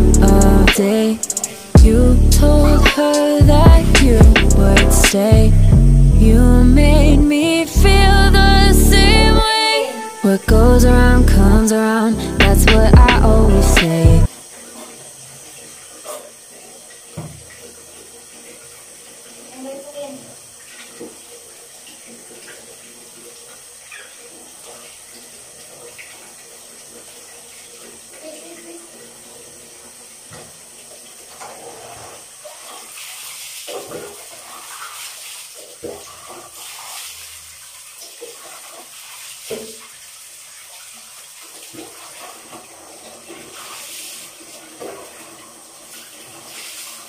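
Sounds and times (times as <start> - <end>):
water splashing and dripping: 0.1 - 5.4, 12.4 - 47.0.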